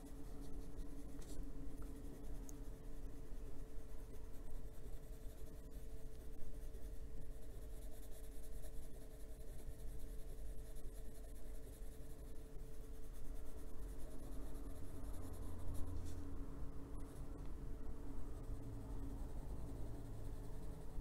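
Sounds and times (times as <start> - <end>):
pencil scratching on paper: 0.0 - 16.4, 18.3 - 21.0.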